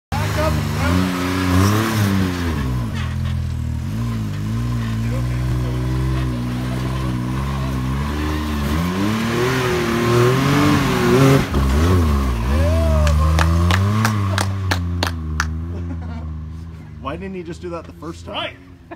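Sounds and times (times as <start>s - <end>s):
engine revving under load: 0.1s - 17.1s.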